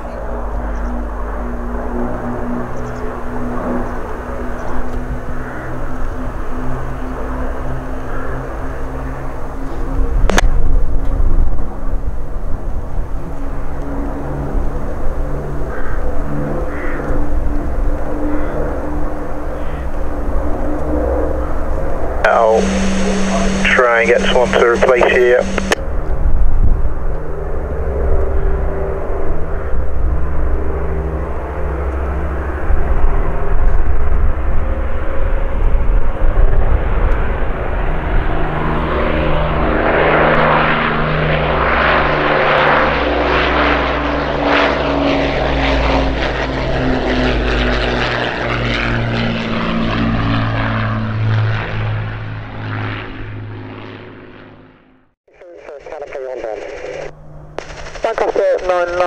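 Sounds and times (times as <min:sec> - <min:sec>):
propeller aircraft engines droning: 0:00.0 - 0:59.0.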